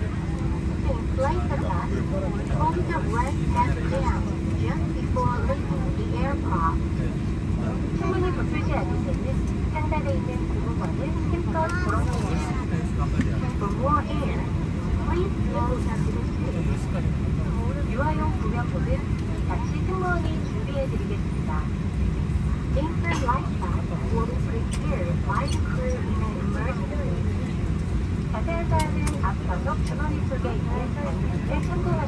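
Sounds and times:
faint passenger chatter: 0:00.0 - 0:32.0
low airliner cabin rumble: 0:00.0 - 0:32.0.

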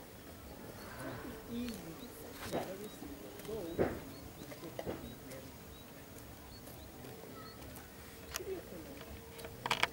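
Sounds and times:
faint voices: 0:00.0 - 0:09.9.

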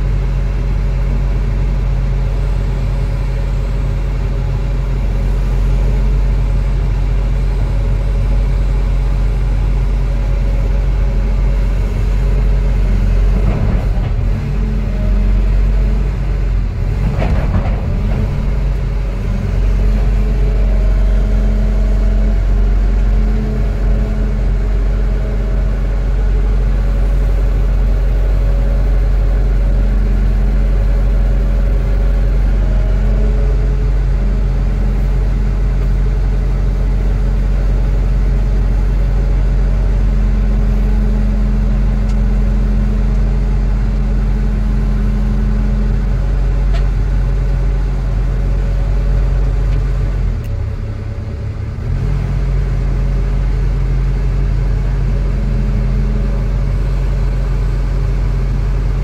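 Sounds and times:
excavator diesel engine drone: 0:00.0 - 0:59.0.

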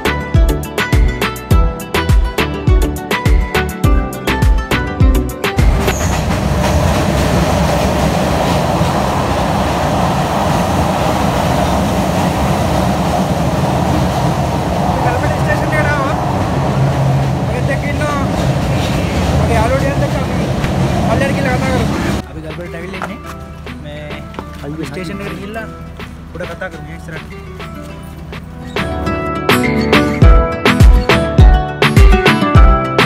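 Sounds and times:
train wheels on rails: 0:05.6 - 0:28.8.

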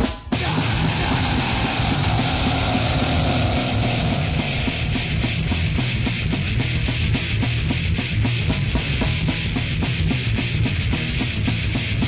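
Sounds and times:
fast drumming: 0:00.0 - 0:12.0
distorted guitar riff: 0:00.4 - 0:12.0.

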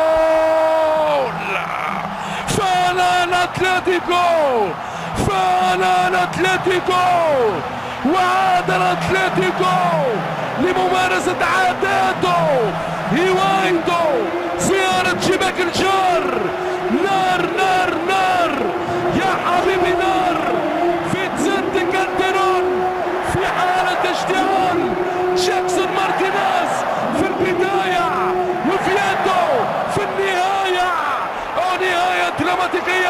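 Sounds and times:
football commentator shouting: 0:00.0 - 0:33.0
stadium crowd noise: 0:00.0 - 0:33.0.

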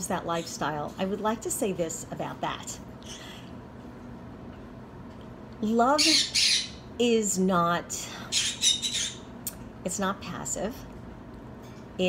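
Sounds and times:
parrot squawking: 0:06.0 - 0:06.9, 0:08.3 - 0:09.3.

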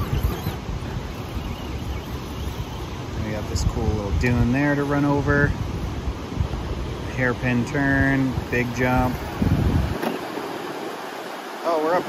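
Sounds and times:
wind buffeting microphone: 0:00.0 - 0:11.6.

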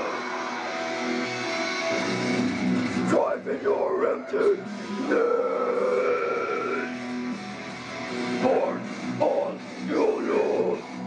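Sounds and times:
harsh growled scream: 0:00.0 - 0:01.3, 0:03.7 - 0:07.0
heavy guitar backing track: 0:00.0 - 0:11.0.

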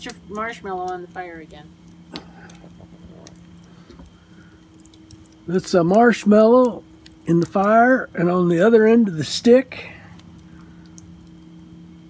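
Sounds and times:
campfire crackling: 0:00.0 - 0:12.0
sharp pops of burning wood: 0:00.0 - 0:12.0.

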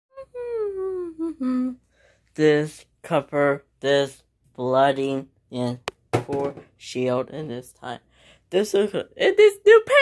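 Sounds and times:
person humming a tune: 0:00.2 - 0:01.8.

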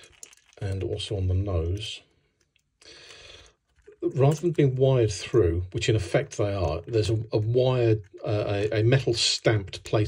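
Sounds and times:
short breath drawn in: 0:02.8 - 0:03.6.

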